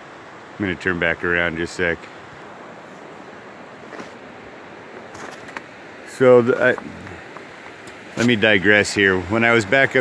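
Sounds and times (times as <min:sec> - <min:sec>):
river water rushing: 0:00.0 - 0:10.0.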